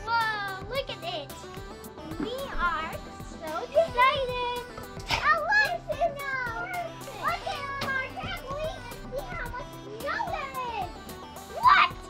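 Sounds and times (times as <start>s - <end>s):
background music: 0.0s - 12.0s
young children calling and squealing: 0.0s - 12.0s.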